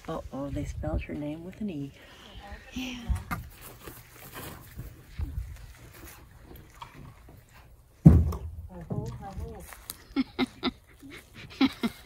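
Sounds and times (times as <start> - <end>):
person laughing: 10.0 - 12.0.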